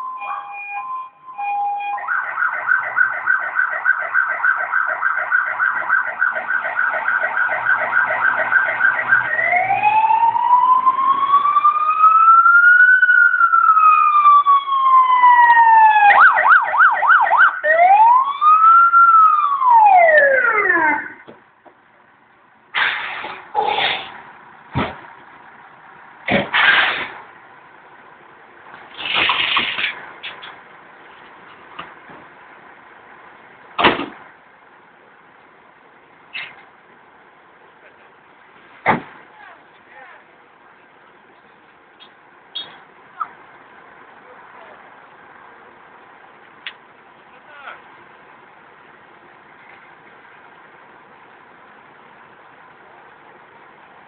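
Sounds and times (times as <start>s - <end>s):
fire engine siren: 0.0s - 21.3s
short bangs: 26.2s - 27.3s, 33.8s - 34.3s, 38.8s - 39.3s.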